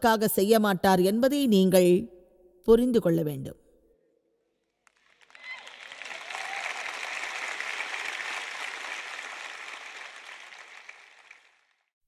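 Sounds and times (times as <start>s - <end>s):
audience applauding: 4.9s - 11.9s.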